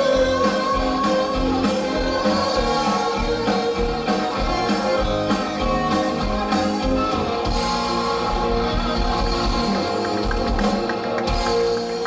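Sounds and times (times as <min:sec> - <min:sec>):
bass guitar: 0:00.0 - 0:12.0
electric guitars: 0:00.0 - 0:12.0.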